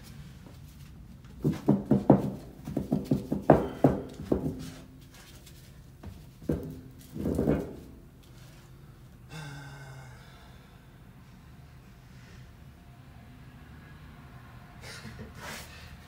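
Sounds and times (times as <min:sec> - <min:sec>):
man breathing and grunting: 0:03.5 - 0:04.2, 0:08.5 - 0:12.7.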